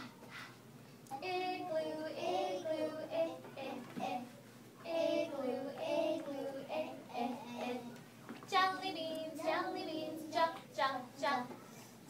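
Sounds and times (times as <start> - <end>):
young children singing: 1.1 - 11.7.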